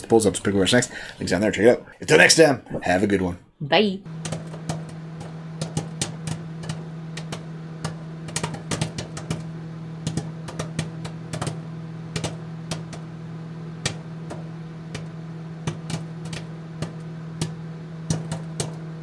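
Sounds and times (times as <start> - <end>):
steady low hum: 4.0 - 19.0.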